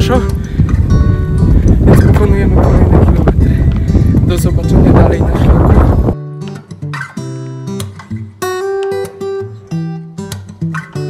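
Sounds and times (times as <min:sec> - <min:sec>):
wind on microphone: 0:00.0 - 0:06.2
man talking: 0:01.9 - 0:03.6, 0:04.2 - 0:06.0.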